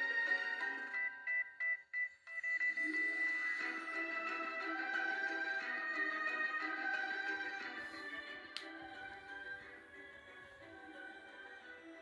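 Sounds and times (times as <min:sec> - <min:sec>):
background music held tones: 0:00.0 - 0:12.0.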